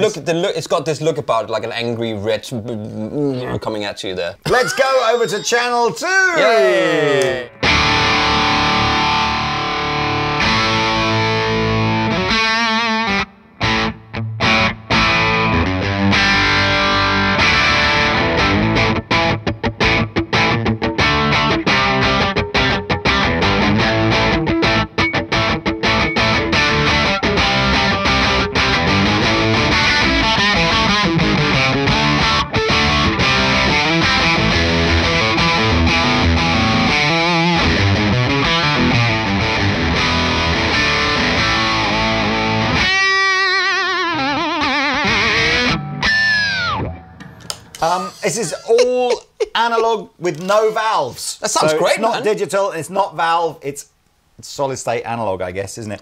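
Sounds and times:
distorted electric guitar: 0:07.4 - 0:48.3.

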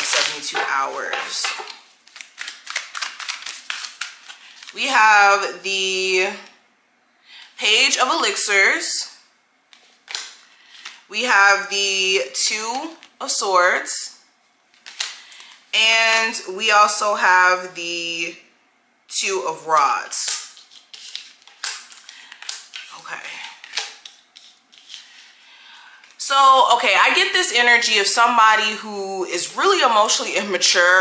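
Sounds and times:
cards being handled: 0:00.0 - 0:04.7, 0:14.7 - 0:15.6, 0:20.2 - 0:25.3.

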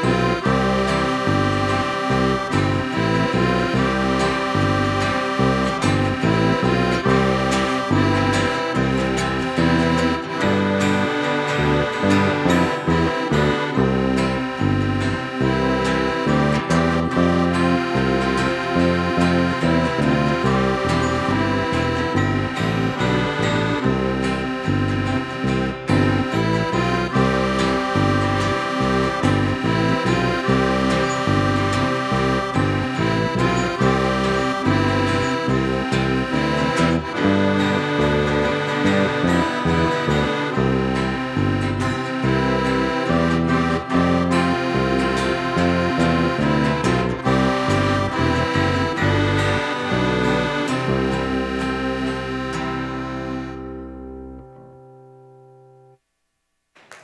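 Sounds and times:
bass line: 0:00.0 - 0:55.2
electric guitars: 0:00.0 - 0:55.3
accordion: 0:00.0 - 0:56.0
acoustic guitar: 0:00.0 - 0:56.1.

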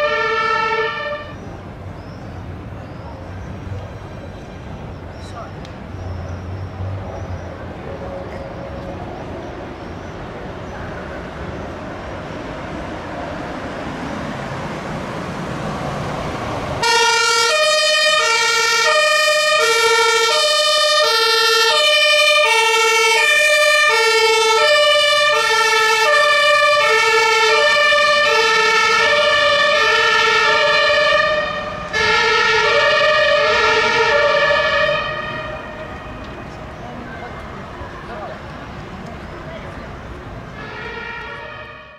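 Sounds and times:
two-tone siren: 0:00.0 - 0:01.4, 0:16.8 - 0:36.3, 0:40.6 - 0:41.9
road noise: 0:00.0 - 0:41.9.

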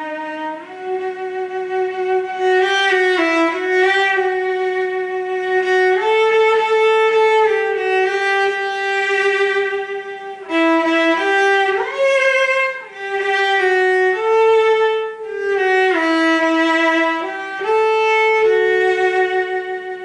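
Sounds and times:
bowed cello melody: 0:00.0 - 0:20.0.

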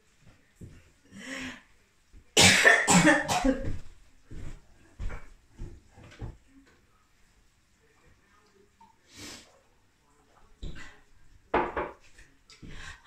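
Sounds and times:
woman coughing: 0:02.4 - 0:03.8.

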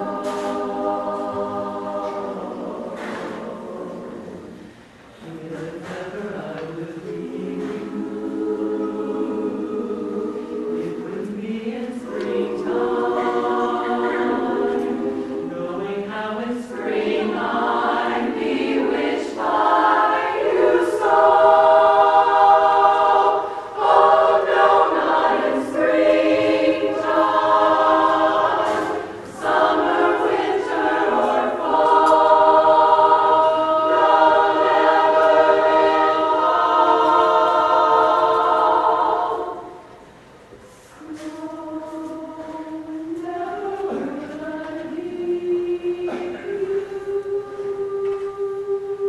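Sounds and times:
women's chorus singing a cappella: 0:00.0 - 0:49.0
singers' short breaths: 0:04.6 - 0:05.2, 0:23.4 - 0:23.8, 0:39.9 - 0:41.4.

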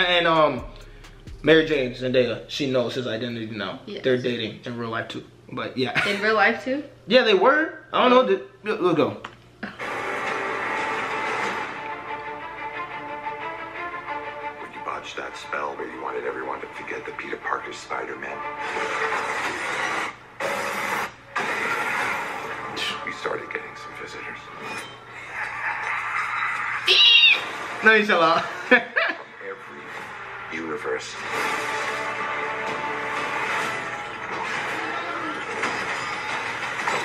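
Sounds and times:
sharp hits: 0:00.0 - 0:03.1.

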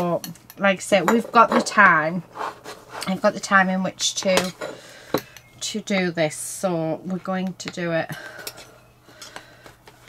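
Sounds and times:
ceramic bowl rubbing: 0:01.1 - 0:03.6.

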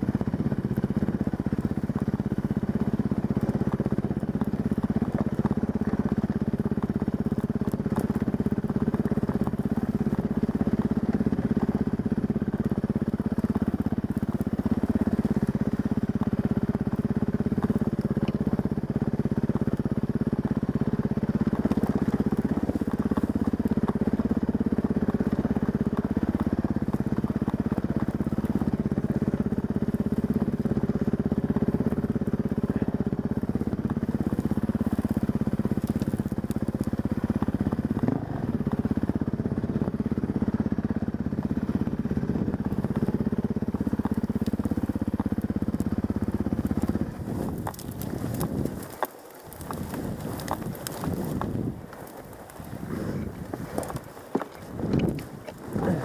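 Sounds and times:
dirt bike engine running: 0:00.0 - 0:56.0.

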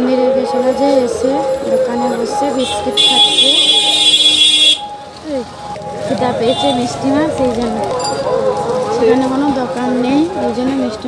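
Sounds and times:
voices: 0:00.0 - 0:11.0.

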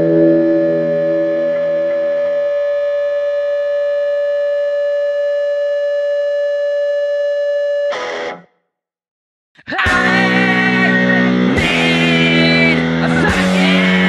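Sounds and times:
guitar chord: 0:00.0 - 0:03.4, 0:09.9 - 0:14.0
distorted electric guitar feedback: 0:00.0 - 0:08.5, 0:09.8 - 0:14.0.

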